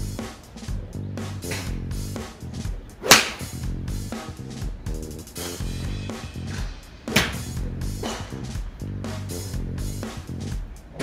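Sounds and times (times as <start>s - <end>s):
background music: 0.0s - 11.0s
golf club striking ball: 3.0s - 3.5s, 7.1s - 7.4s.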